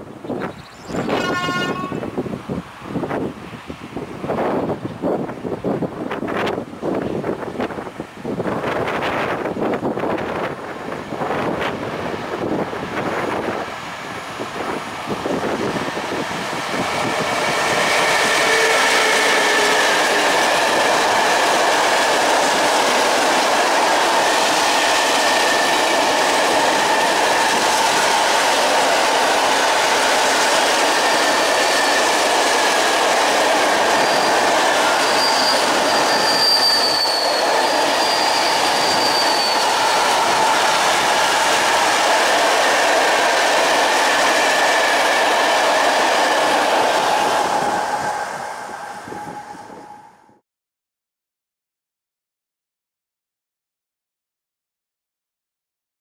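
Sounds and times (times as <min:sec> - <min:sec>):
freight train rolling past: 0:00.2 - 0:50.4
train wheels squealing: 0:00.4 - 0:02.0, 0:16.7 - 0:20.4, 0:30.3 - 0:32.6, 0:33.6 - 0:40.8, 0:47.0 - 0:50.4.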